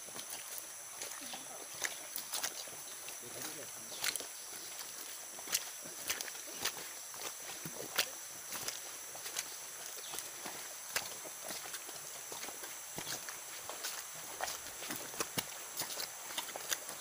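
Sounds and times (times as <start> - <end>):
footsteps in dry leaves and twigs: 0.0 - 17.0
steady high-pitched hiss: 0.0 - 17.0.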